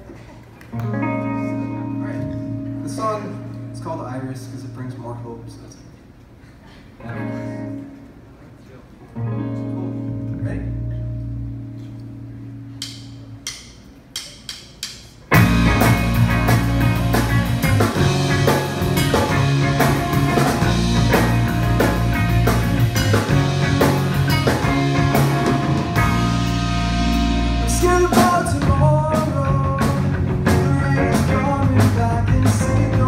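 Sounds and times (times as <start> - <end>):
rock band playing loud: 15.3 - 33.0
guitar chord ringing: 15.4 - 28.1.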